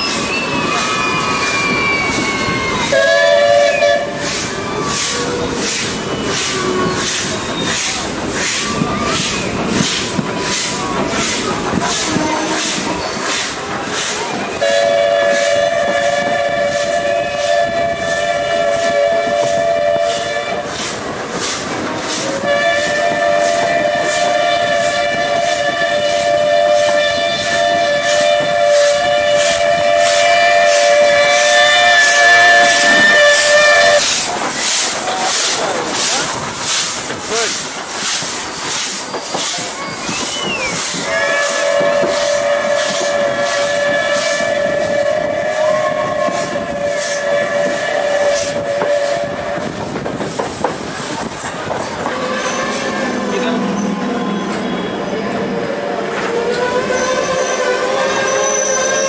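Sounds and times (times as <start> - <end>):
two-toned steam whistle blasts: 0.0 - 13.4, 14.5 - 20.8, 22.2 - 35.0, 39.8 - 49.8, 52.1 - 59.0
steam hiss: 0.0 - 55.2
rhythmic beat of moving train: 0.0 - 59.0.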